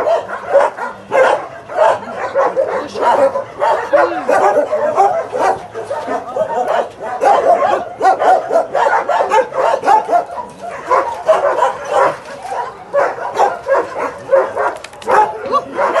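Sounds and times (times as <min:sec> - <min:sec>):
dogs barking: 0:00.0 - 0:16.0.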